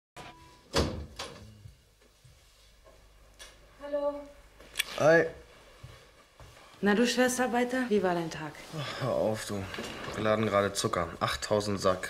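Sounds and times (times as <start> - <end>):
door shutting with a bang: 0.7 - 1.5.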